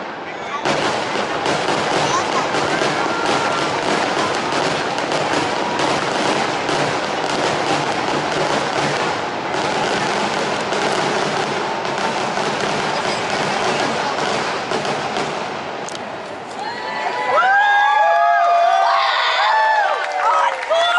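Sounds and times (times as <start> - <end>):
fireworks bangs and crackling: 0.0 - 16.3.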